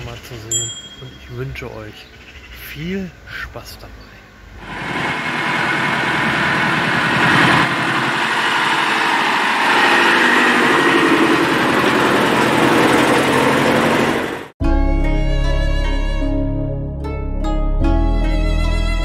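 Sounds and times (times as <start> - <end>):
truck engine running: 4.6 - 14.6.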